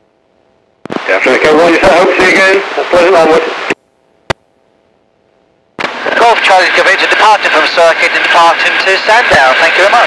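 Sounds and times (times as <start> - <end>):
faint steady hum: 0.0 - 10.0
sharp radio click: 0.8 - 1.2, 5.8 - 6.2
radio transmission: 0.9 - 3.8, 5.8 - 10.0.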